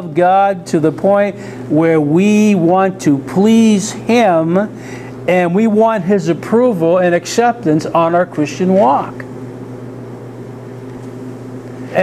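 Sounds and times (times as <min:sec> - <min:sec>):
low mechanical room hum: 0:00.0 - 0:12.0.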